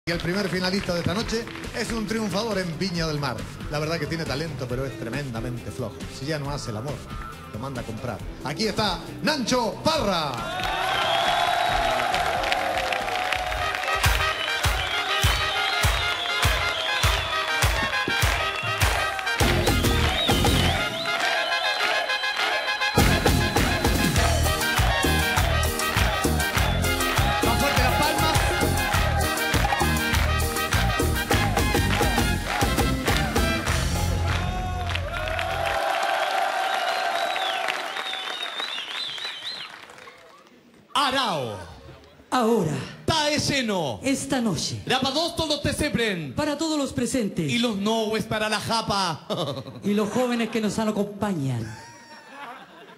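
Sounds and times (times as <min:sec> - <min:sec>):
audience cheering and clapping: 0:10.1 - 0:40.9
band music: 0:13.3 - 0:35.4
long whistles: 0:14.4 - 0:17.5, 0:19.8 - 0:23.0, 0:36.9 - 0:39.8.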